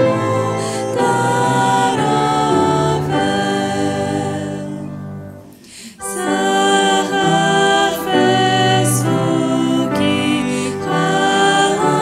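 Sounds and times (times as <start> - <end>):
organ: 0.0 - 12.0
women singing a hymn: 0.0 - 12.0.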